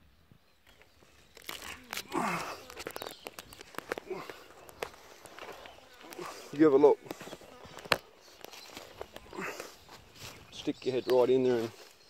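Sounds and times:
scuffing on dry bark and leaves: 0.7s - 12.0s.

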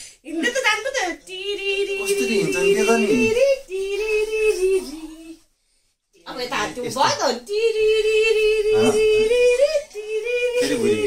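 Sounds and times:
person singing long notes: 1.3s - 5.4s, 7.5s - 11.0s
lower wavering voice: 7.6s - 11.0s.

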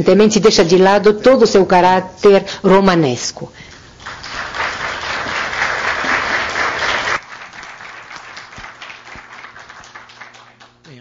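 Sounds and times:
audience applauding: 3.7s - 11.0s.

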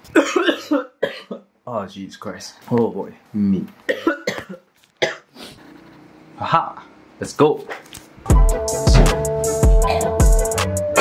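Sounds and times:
person coughing: 0.1s - 1.5s, 3.9s - 5.3s.

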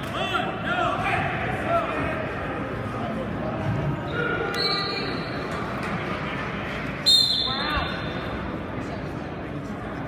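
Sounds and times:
crowd voices and shouting: 0.0s - 10.0s.

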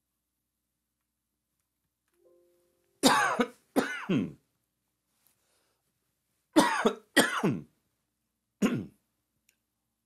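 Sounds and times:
man coughing: 3.0s - 4.4s, 6.6s - 7.7s, 8.6s - 9.0s.

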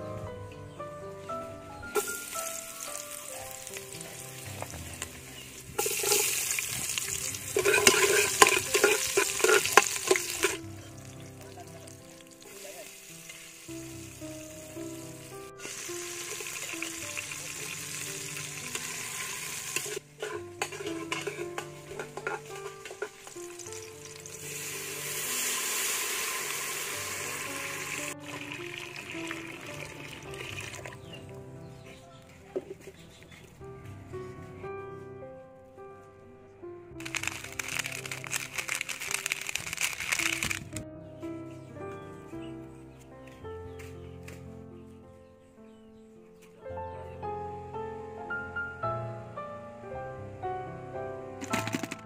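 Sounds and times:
background music: 0.0s - 52.0s
food sizzling in hot oil: 2.0s - 31.1s, 37.0s - 40.7s.

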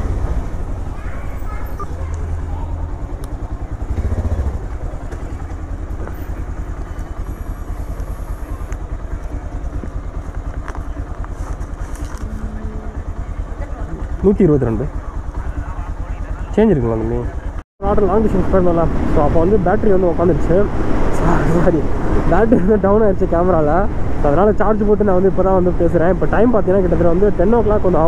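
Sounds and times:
motorcycle engine running and idling: 0.0s - 20.7s.

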